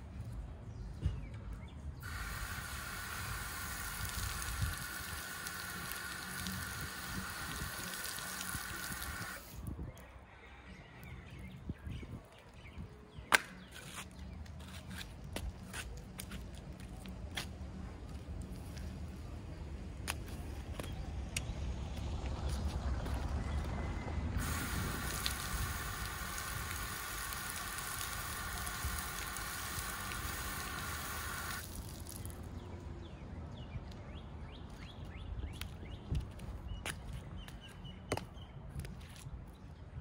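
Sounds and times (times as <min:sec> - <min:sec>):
outdoor shower spray hissing: 0:02.0 - 0:09.6, 0:24.4 - 0:32.3
bare feet slapping wet concrete: 0:24.4 - 0:32.5.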